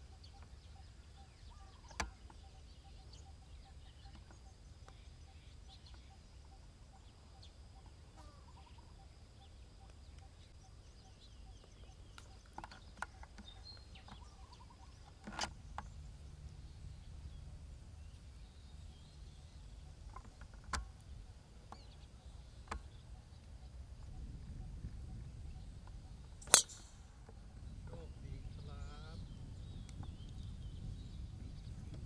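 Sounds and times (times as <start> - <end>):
faint bird chirps: 0.0 - 32.0
steady low rumble: 26.2 - 32.0.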